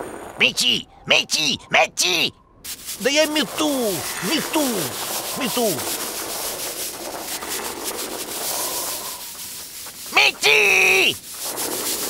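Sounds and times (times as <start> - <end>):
broom scrubbing on ice: 2.1 - 12.0.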